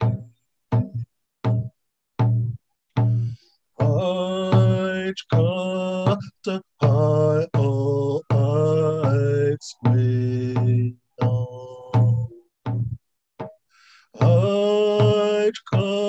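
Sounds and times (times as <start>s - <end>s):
hand drum: 0.0s - 13.6s, 14.2s - 16.0s
man singing a chant: 3.1s - 12.4s, 14.1s - 16.0s.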